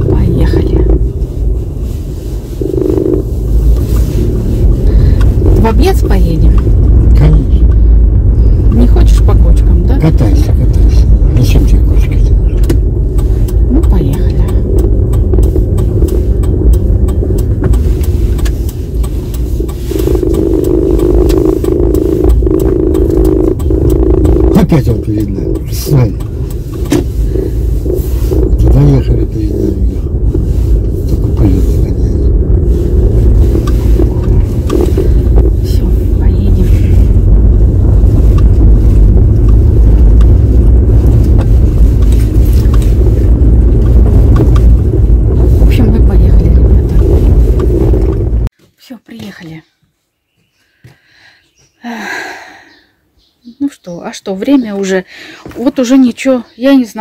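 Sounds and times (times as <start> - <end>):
steady hum: 0.0 - 48.5
car engine and tyre rumble: 0.0 - 57.0.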